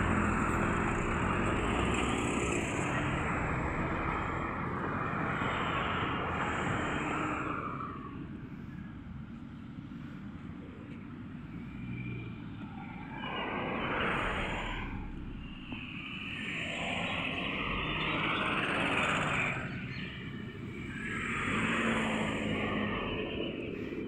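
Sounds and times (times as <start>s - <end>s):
low traffic rumble: 0.0s - 24.0s
vehicles passing: 0.0s - 24.0s.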